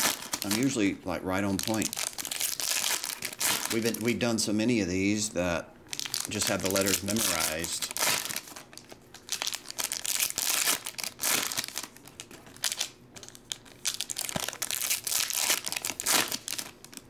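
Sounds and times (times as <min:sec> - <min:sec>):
foil wrappers crinkling and tearing: 0:00.0 - 0:04.2, 0:05.9 - 0:17.0.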